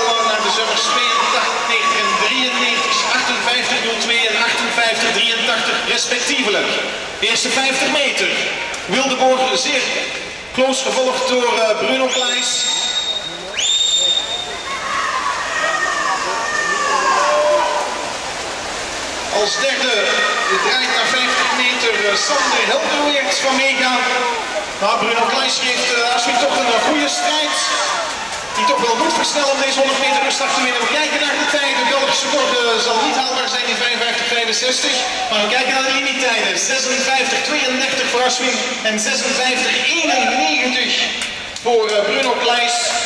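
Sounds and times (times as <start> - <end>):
spectators cheering and shouting: 0.0 - 5.5, 10.9 - 18.4, 19.2 - 36.2, 39.7 - 41.0
man speaking: 0.0 - 12.8, 19.3 - 28.0, 28.6 - 43.0
steady background noise: 0.0 - 43.0
shrill whistle tone: 12.1 - 14.8.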